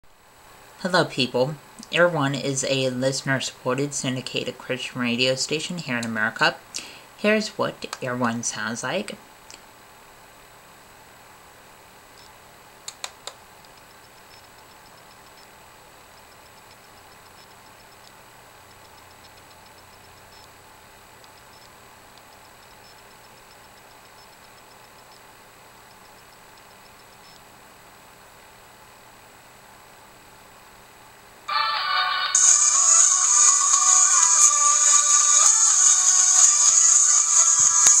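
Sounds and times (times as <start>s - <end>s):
room hiss: 0.0s - 38.0s
sharp clicks: 12.2s - 15.4s, 16.6s - 20.5s
radio music from laptop speakers: 31.5s - 38.0s.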